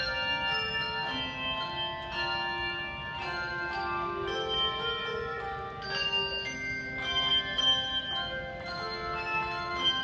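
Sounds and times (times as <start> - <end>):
handbell choir playing: 0.0 - 10.0.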